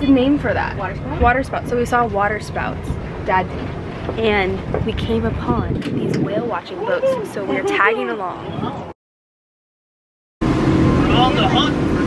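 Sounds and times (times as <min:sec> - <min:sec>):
motorboat engine droning: 0:00.0 - 0:08.9, 0:10.4 - 0:12.0
voices: 0:00.0 - 0:08.9, 0:11.0 - 0:12.0.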